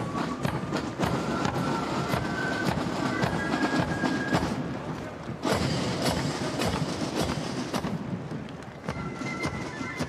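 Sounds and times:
marching footsteps: 0:00.0 - 0:10.0
outdoor hubbub: 0:00.0 - 0:10.0.

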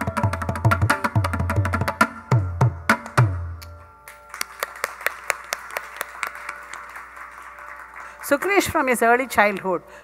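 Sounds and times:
audience clapping: 0:04.0 - 0:09.7.

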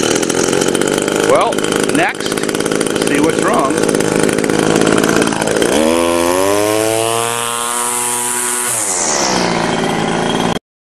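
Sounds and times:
string trimmer engine revving: 0:00.0 - 0:10.6.

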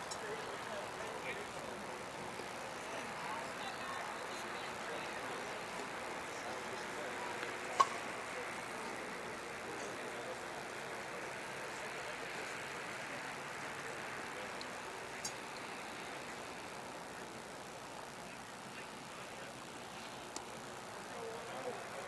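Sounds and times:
faint crowd chatter: 0:00.0 - 0:22.0.

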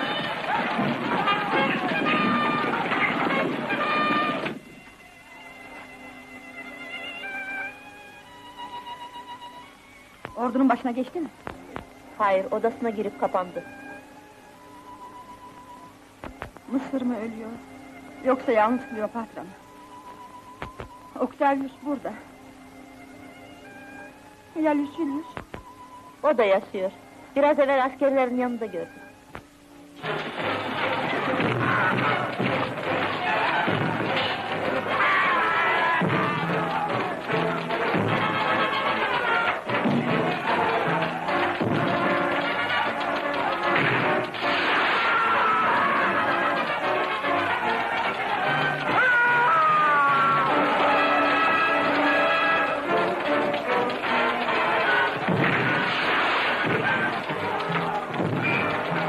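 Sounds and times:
soldiers fighting: 0:00.0 - 0:04.7, 0:30.0 - 0:59.0
thuds: 0:29.3 - 0:35.0, 0:36.0 - 0:38.6, 0:39.7 - 0:42.8, 0:55.2 - 0:59.0
battle film music: 0:29.9 - 0:49.0, 0:49.9 - 0:59.0
heavy battle thuds: 0:30.0 - 0:34.9
orchestral music with brass chords: 0:36.0 - 0:44.6, 0:50.6 - 0:55.8.

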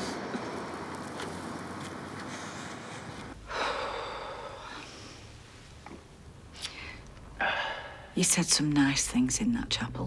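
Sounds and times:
man gasping: 0:07.4 - 0:08.1.

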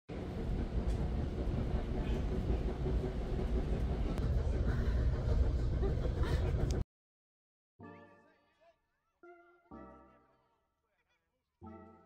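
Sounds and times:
train rumble inside rail car: 0:00.1 - 0:06.8.

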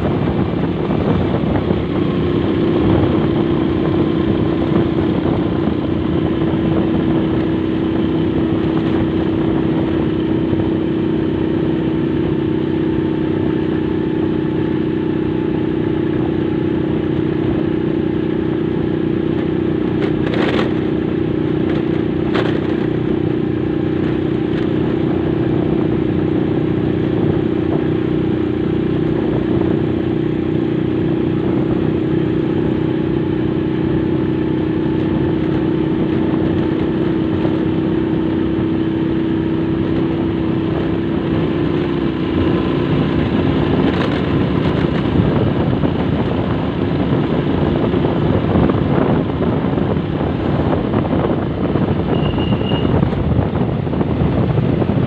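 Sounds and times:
motorcycle engine cruising: 0:00.0 - 0:55.0.

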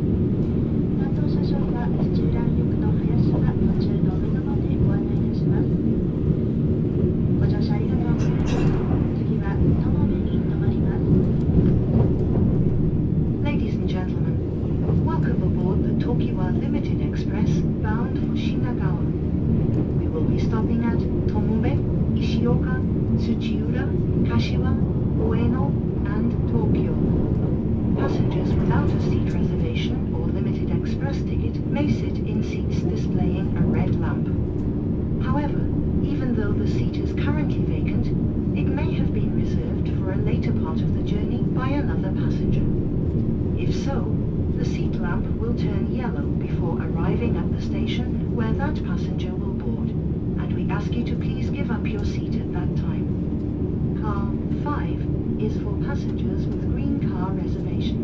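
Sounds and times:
train rumble from inside: 0:00.0 - 0:58.0
people talking: 0:01.0 - 0:05.8, 0:07.4 - 0:11.3, 0:13.4 - 0:19.2, 0:19.8 - 0:27.1, 0:28.0 - 0:34.3, 0:35.2 - 0:42.7, 0:43.6 - 0:53.1, 0:54.0 - 0:58.0.

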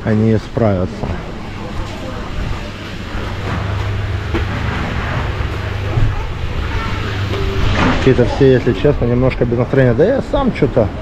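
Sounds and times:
people chattering: 0:00.0 - 0:11.0
steady low hum: 0:00.0 - 0:11.0.

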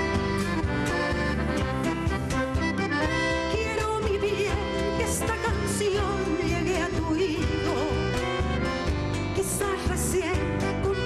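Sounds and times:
live band playing folk music: 0:00.0 - 0:11.0
piano accordion melody: 0:00.0 - 0:11.0
woman singing: 0:03.3 - 0:11.0.

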